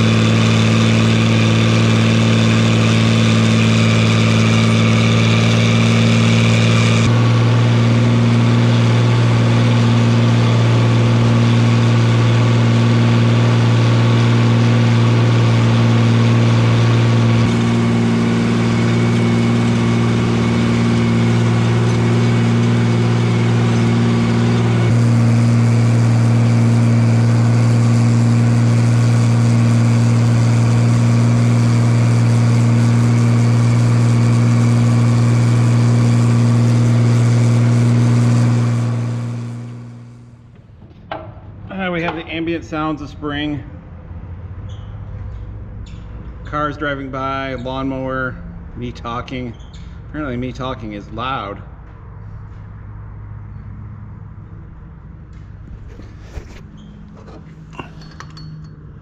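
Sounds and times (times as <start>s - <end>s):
tractor engine hum: 0.0s - 59.0s.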